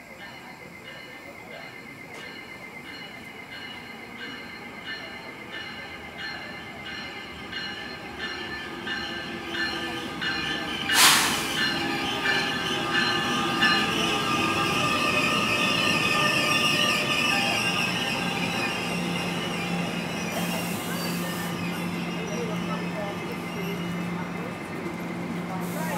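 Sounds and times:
train bell ringing: 0.0 - 25.9
wheels and brakes squealing: 1.0 - 25.9
loud burst of locomotive noise: 10.5 - 22.7.

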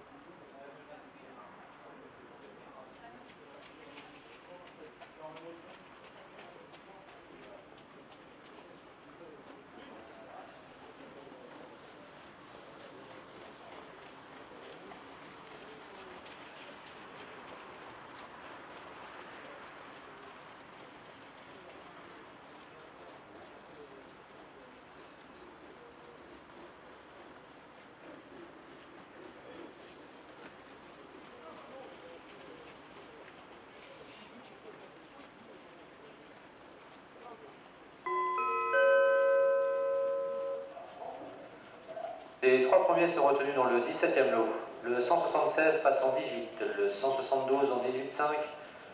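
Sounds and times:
distant voices: 1.7 - 48.9.

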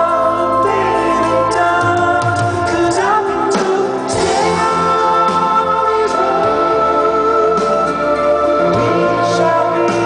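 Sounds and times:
band playing pop ballad: 0.0 - 10.0
man singing: 0.0 - 10.0.

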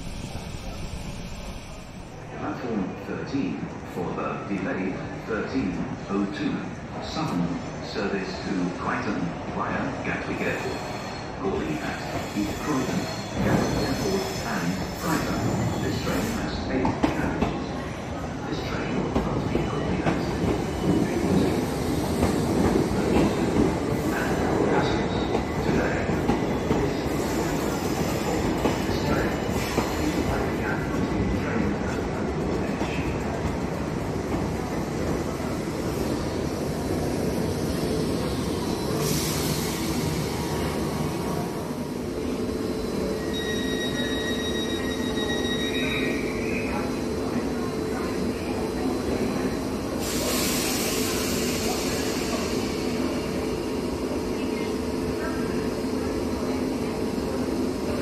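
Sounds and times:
high squeal of train brakes: 10.4 - 16.6, 24.1 - 30.2, 38.1 - 40.6, 42.8 - 46.7, 50.0 - 53.4.

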